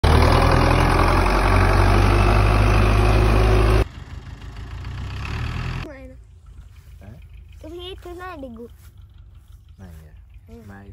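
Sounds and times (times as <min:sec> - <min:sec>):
tractor diesel engine running: 0:00.0 - 0:10.9.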